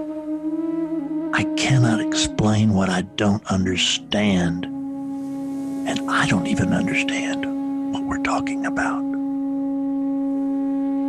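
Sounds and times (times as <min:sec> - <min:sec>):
meditative drone music: 0:00.0 - 0:11.0.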